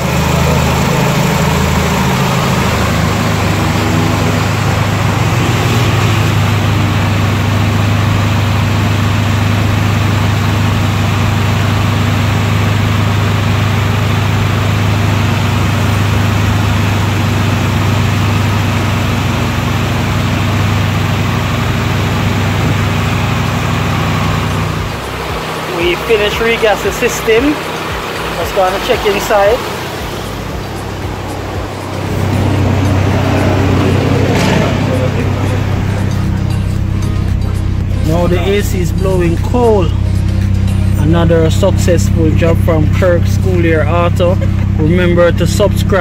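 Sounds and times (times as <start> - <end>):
air conditioning compressor running: 0.0 - 46.0
car engine idling: 0.0 - 46.0.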